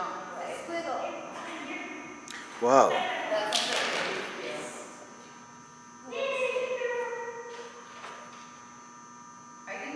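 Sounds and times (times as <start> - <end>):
electrical hum: 0.0 - 9.9.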